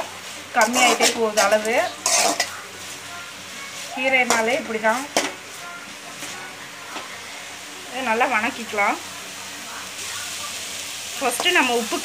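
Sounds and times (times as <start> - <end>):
light sizzle: 0.0 - 12.0
ladle scraping in a pan: 0.5 - 3.0
woman talking: 3.9 - 7.2, 7.8 - 12.0.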